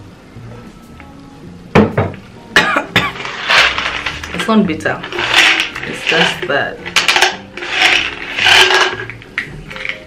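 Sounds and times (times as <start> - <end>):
plastic bottle rasping scrape: 3.1 - 9.2.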